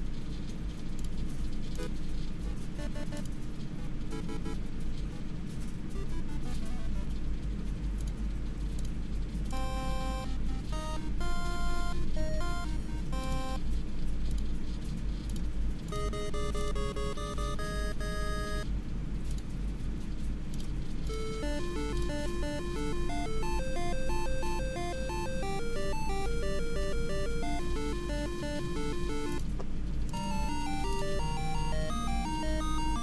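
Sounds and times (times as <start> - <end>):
steady low hum: 0.0 - 33.0
drone motors beeping melodies: 2.8 - 4.6, 9.6 - 13.6, 15.9 - 18.6, 21.1 - 29.4, 30.2 - 33.0.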